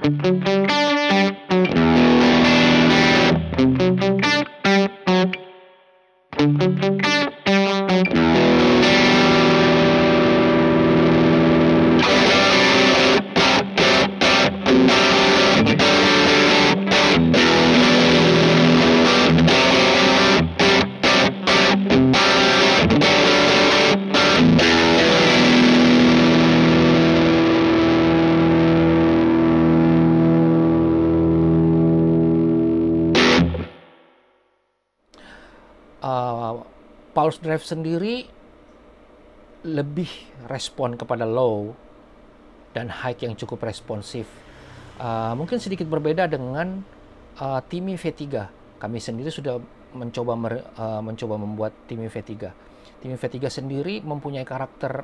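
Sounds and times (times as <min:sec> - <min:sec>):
overdriven electric guitar chords: 0:00.0 - 0:34.4, 0:44.2 - 0:47.6.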